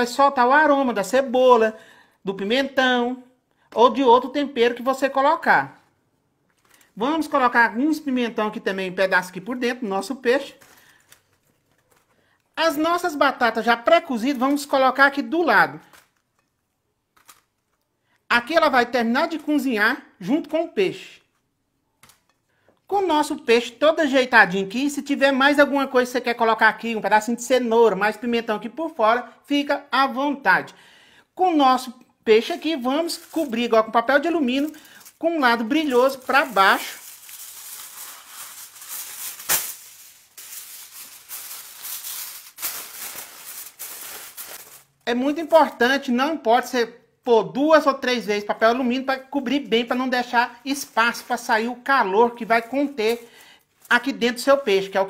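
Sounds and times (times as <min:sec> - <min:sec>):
aluminium foil crinkling: 0:06.4 - 0:07.3, 0:10.0 - 0:12.6, 0:14.2 - 0:18.0, 0:32.4 - 0:45.9, 0:49.2 - 0:55.0.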